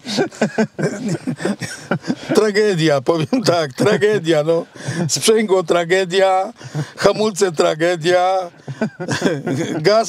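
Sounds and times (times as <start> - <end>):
man laughing: 0.0 - 5.6, 6.4 - 10.0.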